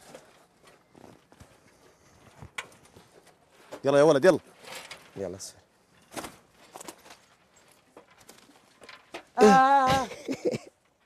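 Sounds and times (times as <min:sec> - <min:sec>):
knocks and scuffs of climbing: 0:00.0 - 0:05.3.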